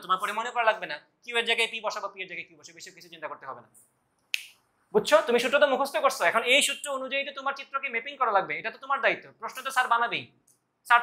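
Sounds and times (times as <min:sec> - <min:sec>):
man speaking: 0:00.0 - 0:03.8, 0:04.9 - 0:11.0.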